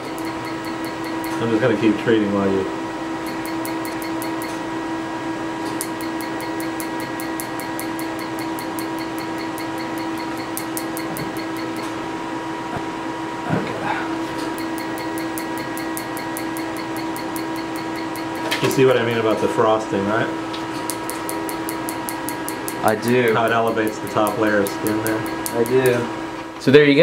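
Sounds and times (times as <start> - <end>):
laser unit humming: 0.0 - 27.0.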